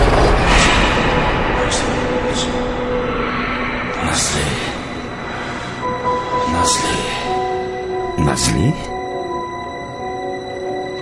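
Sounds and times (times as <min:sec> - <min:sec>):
noisy rumble: 0:00.0 - 0:08.2
suspenseful film score: 0:00.0 - 0:11.0.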